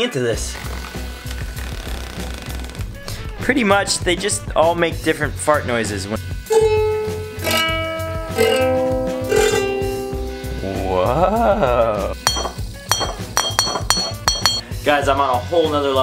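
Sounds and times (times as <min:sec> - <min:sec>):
ukulele notes: 0:06.5 - 0:10.7.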